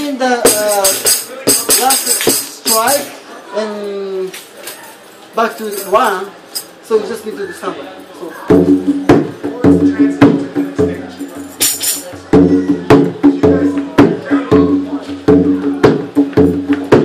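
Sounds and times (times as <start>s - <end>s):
hand drum funk rhythm: 0.3s - 3.0s, 8.4s - 17.0s.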